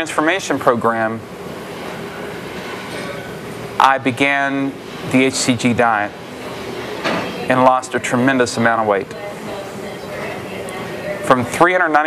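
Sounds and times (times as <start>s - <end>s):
gym room background noise: 0.0s - 12.0s.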